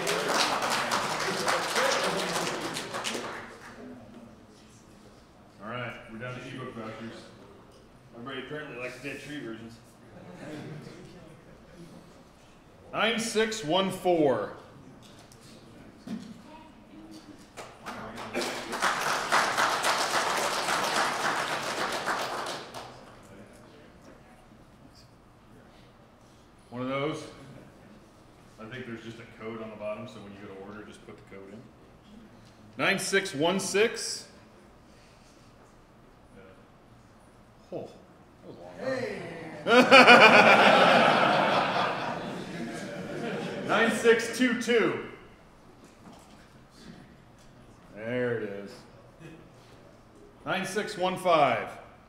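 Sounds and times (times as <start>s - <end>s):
audience clapping: 0.0s - 3.9s, 17.5s - 23.4s.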